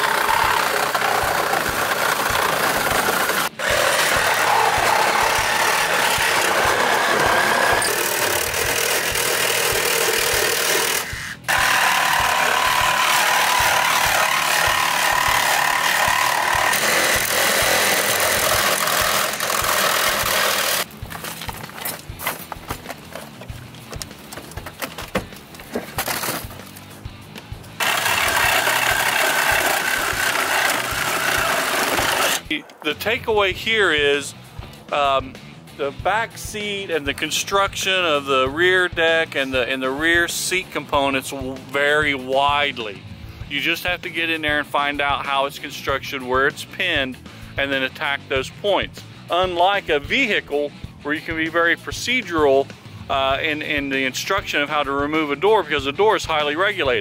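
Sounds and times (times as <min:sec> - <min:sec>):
reciprocating saw cutting: 0:00.0 - 0:20.9, 0:27.8 - 0:32.8
knocks and rattles: 0:00.0 - 0:26.8.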